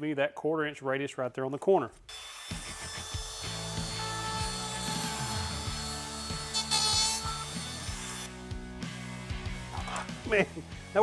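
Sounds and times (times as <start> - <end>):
router motor whine: 2.1 - 8.3
router cutting wood: 2.1 - 8.4.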